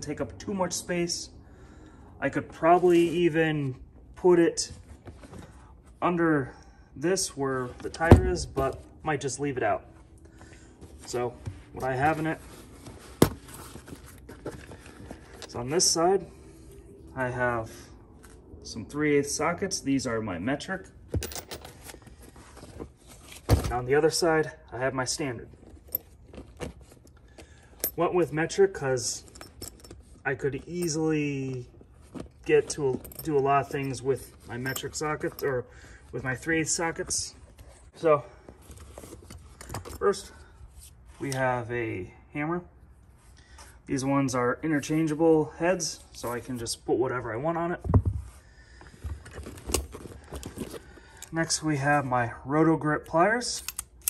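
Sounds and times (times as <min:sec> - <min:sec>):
rummaging in canvas bag: 0:10.7 - 0:15.6, 0:21.2 - 0:23.9, 0:25.5 - 0:27.7, 0:29.2 - 0:30.2, 0:30.8 - 0:35.5, 0:37.0 - 0:40.2, 0:48.9 - 0:51.3
metal tools clinking: 0:21.1 - 0:22.0, 0:29.1 - 0:31.2, 0:32.1 - 0:35.6, 0:53.6 - 0:54.0.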